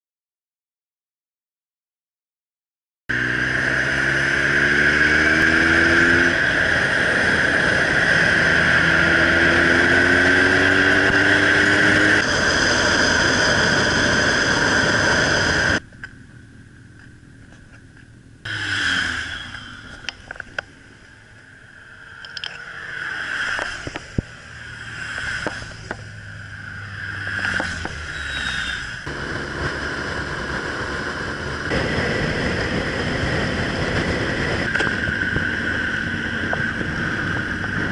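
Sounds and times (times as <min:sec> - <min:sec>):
motorcycle engine: 0:03.1 - 0:37.9
wind noise: 0:04.3 - 0:15.9, 0:21.8 - 0:37.9.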